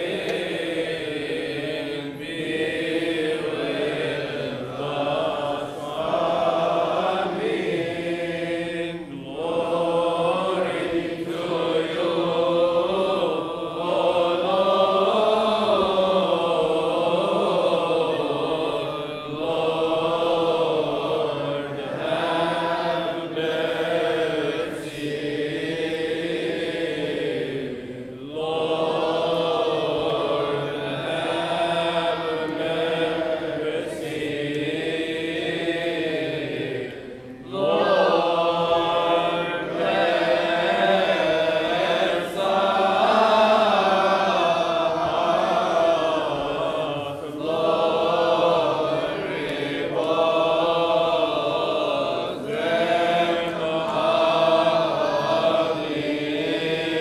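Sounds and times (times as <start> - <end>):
voices chanting slow melody: 0.0 - 57.0.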